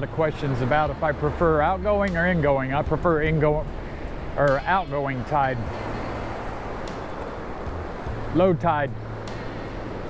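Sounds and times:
surf breaking on sand beach: 0:00.0 - 0:10.0.

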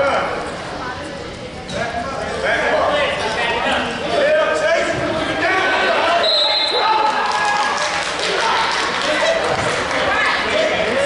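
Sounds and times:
voices shouting in a gym: 0:01.8 - 0:11.0.

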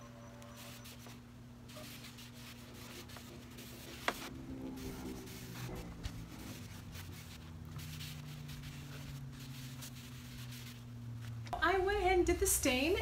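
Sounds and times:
rag rubbing on wooden tabletop: 0:01.7 - 0:10.8.

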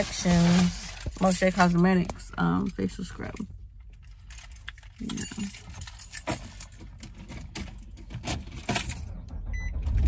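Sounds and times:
handling clicks and rustles: 0:00.0 - 0:09.3
low car cabin rumble: 0:00.0 - 0:10.0.

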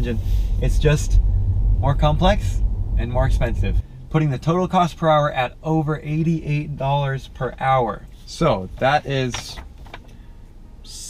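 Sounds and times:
car cabin hum: 0:00.0 - 0:10.9.

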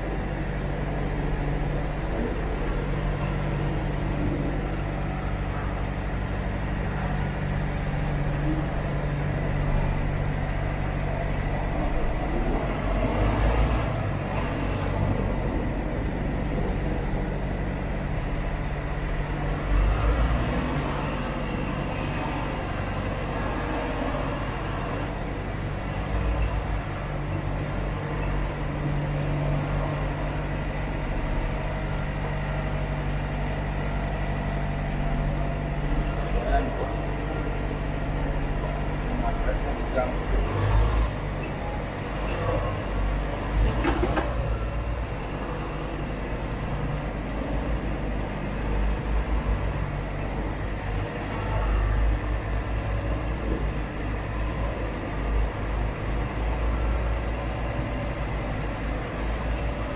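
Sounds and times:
diesel truck engine humming: 0:00.0 - 0:59.9.

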